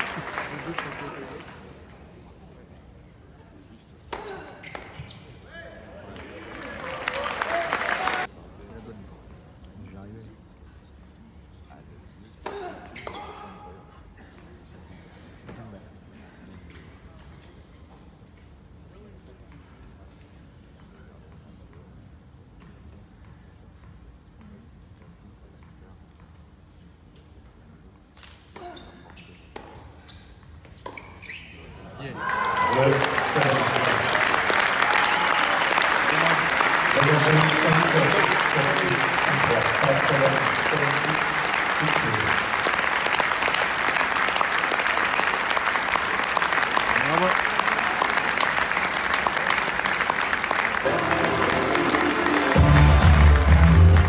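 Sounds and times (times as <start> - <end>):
scattered clapping: 0.0 - 1.5, 6.2 - 8.3, 32.4 - 54.0
crowd noise and voices: 0.0 - 12.4, 31.7 - 44.1, 45.8 - 54.0.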